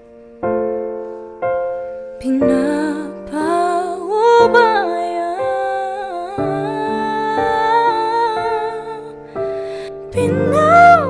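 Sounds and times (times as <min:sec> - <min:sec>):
piano chords: 0:00.0 - 0:11.0
woman singing: 0:02.2 - 0:11.0.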